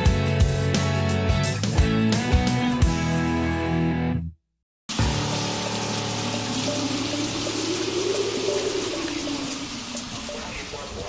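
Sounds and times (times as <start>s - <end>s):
steady rain: 4.9s - 11.0s.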